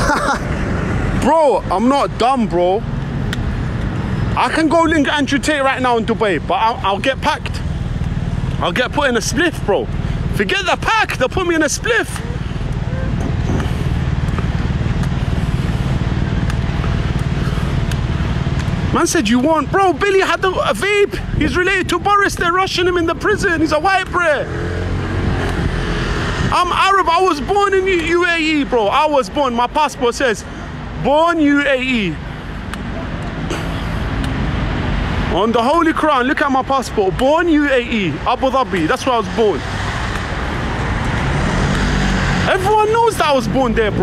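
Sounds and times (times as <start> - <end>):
low outdoor rumble: 0.0 - 41.6
faint engine hum: 12.2 - 19.0.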